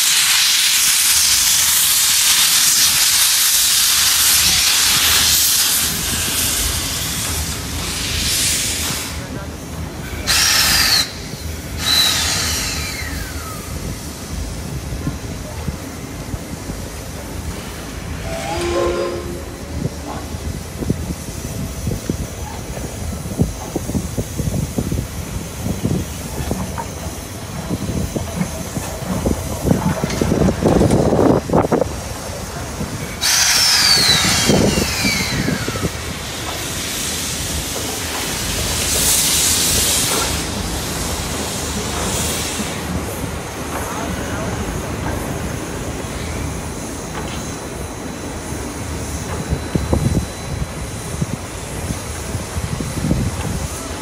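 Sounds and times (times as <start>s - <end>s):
hiss of released steam: 0.0s - 54.0s
steam locomotive rumbling: 0.0s - 54.0s.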